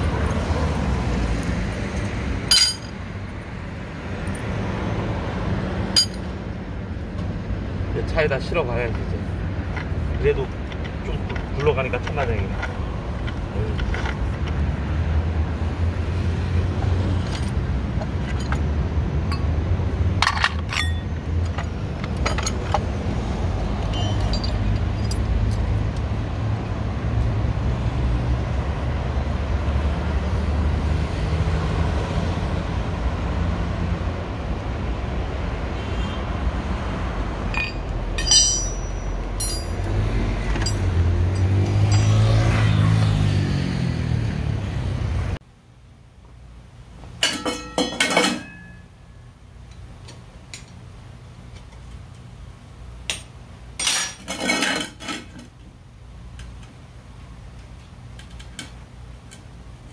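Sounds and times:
traffic rumble: 0.0 - 59.9
metallic clinks: 2.0 - 3.0, 5.9 - 6.3, 23.9 - 25.7, 37.5 - 42.5.

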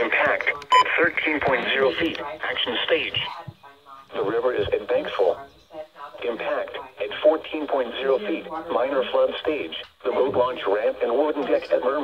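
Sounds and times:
person speaking over radio: 0.0 - 12.0.

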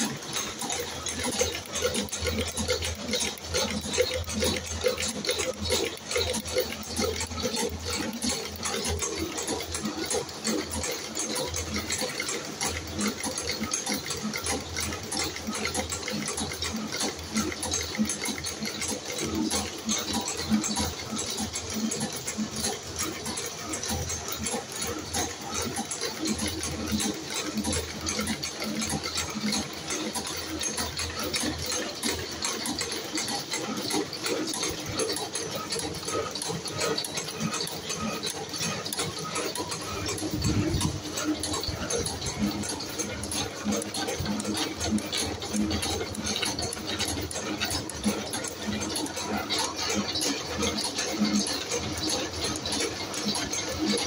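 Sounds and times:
spring coiling machine clattering: 0.0 - 54.0.

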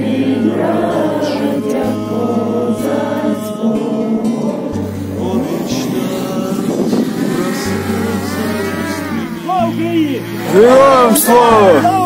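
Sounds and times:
music: 0.0 - 12.0
drone motors whining: 3.8 - 12.0.

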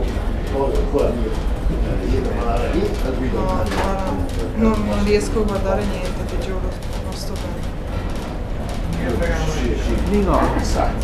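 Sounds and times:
people talking: 0.0 - 7.6, 9.0 - 11.0
steady low rumble: 0.0 - 11.0.

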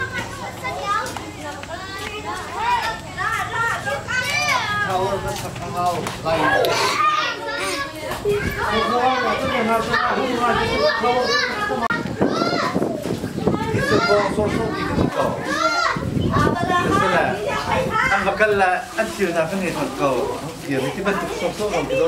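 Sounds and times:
children shouting and chattering: 0.0 - 22.0.

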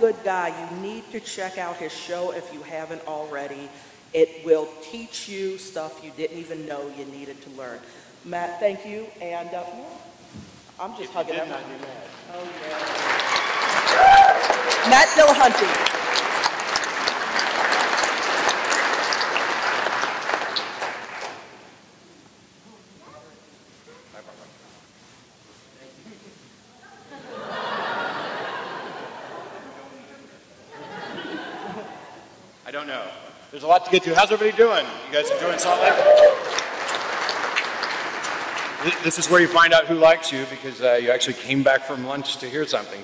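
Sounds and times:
audience applauding: 11.5 - 21.7, 35.2 - 39.7.

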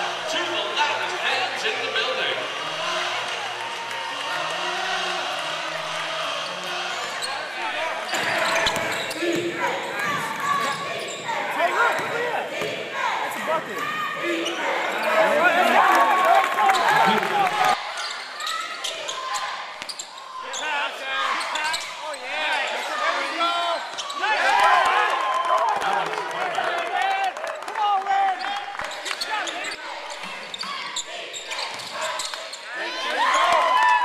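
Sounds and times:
players shouting: 2.4 - 34.0.

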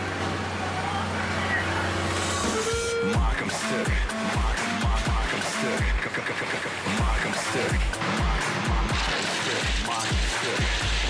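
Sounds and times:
diesel engine drone: 0.0 - 11.0
electronic music held tone: 1.5 - 11.0.

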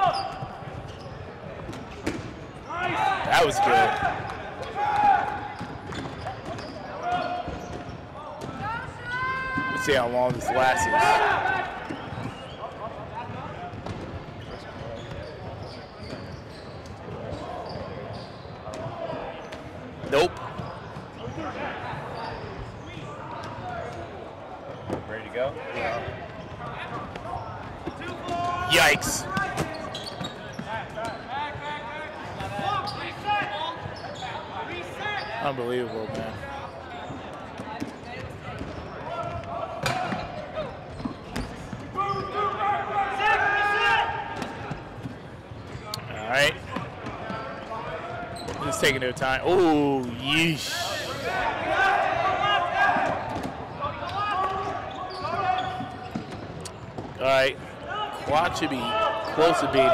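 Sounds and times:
players shouting: 8.6 - 11.9, 49.4 - 55.7.

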